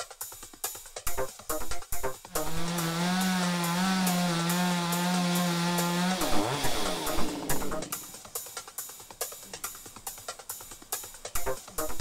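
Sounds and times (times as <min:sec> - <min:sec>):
faint drum beat music: 0:00.0 - 0:12.0
chainsaw running at high revs: 0:02.3 - 0:08.2.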